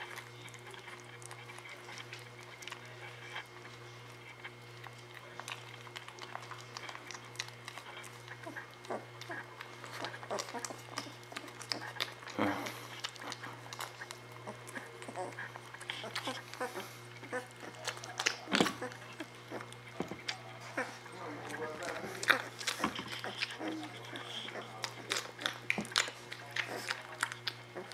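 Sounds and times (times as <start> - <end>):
puppies suckling: 0.0 - 27.9.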